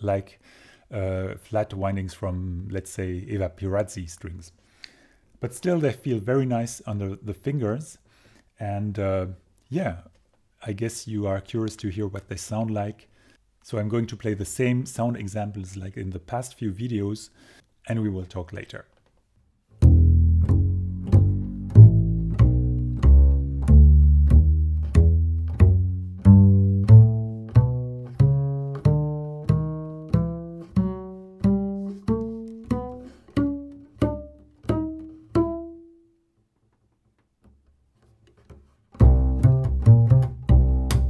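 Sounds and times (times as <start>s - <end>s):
double bass plucked walking line: 19.8s - 36.0s, 38.4s - 41.0s.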